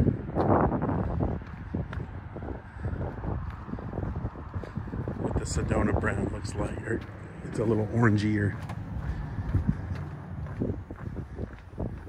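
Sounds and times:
footsteps on concrete: 0:00.0 - 0:12.0
wind rumbling on microphone: 0:00.0 - 0:12.0.

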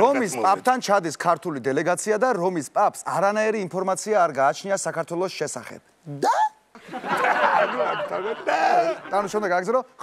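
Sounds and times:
audience laughing: 0:06.8 - 0:09.5.

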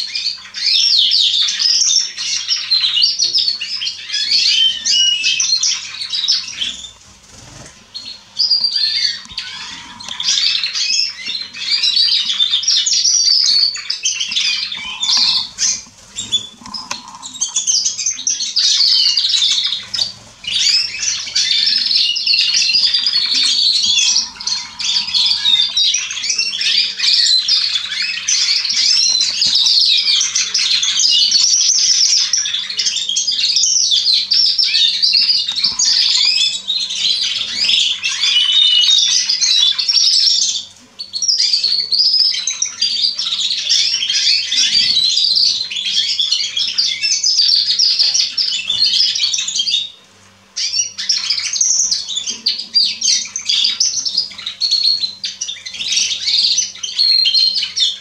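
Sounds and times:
canaries singing trills: 0:00.0 - 0:58.0.

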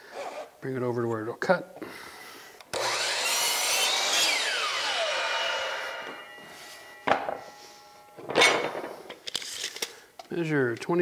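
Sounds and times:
miter saw cutting wood: 0:02.7 - 0:08.7
saw blade spinning down whine: 0:02.8 - 0:08.4.

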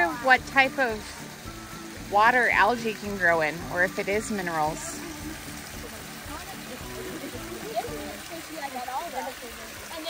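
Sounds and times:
music: 0:00.0 - 0:10.0
water trickling over rock: 0:00.0 - 0:10.0
faint voices: 0:03.6 - 0:10.0.

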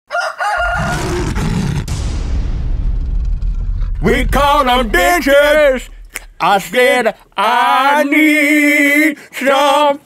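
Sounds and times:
rooster crowing: 0:00.1 - 0:01.3
deep low rumble and hiss: 0:01.9 - 0:07.9.

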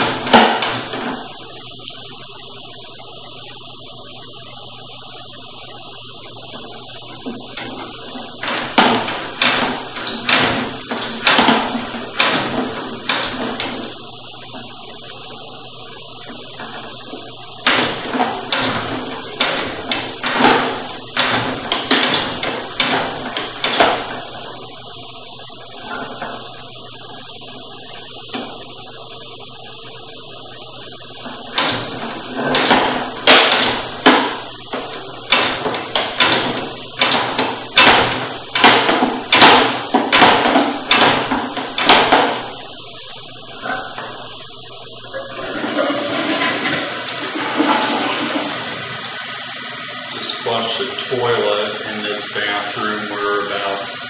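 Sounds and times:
cable rasping in a drain: 0:00.0 - 0:02.0, 0:06.4 - 0:29.8, 0:30.4 - 0:49.2.

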